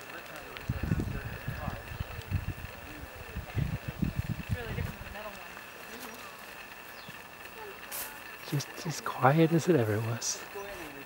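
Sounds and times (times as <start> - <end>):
faint outdoor hiss: 0.0 - 11.0
wind buffeting microphone: 0.3 - 5.9.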